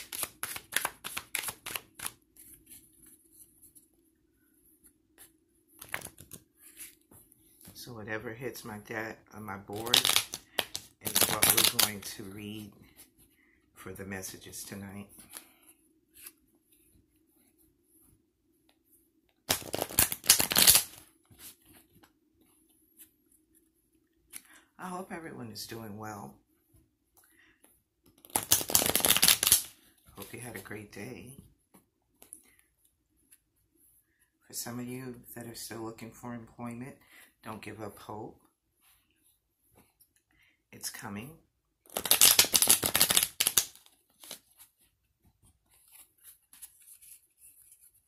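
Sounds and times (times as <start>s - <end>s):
cards being shuffled: 0.0s - 3.8s, 5.1s - 7.8s, 9.6s - 13.1s, 19.4s - 22.1s, 28.0s - 30.7s, 41.8s - 48.0s.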